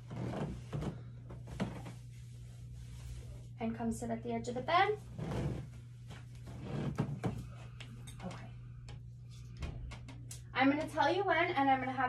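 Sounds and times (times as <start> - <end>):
fabric and bedding rustling: 0.0 - 3.7, 4.8 - 7.5
steady low hum: 0.0 - 12.0.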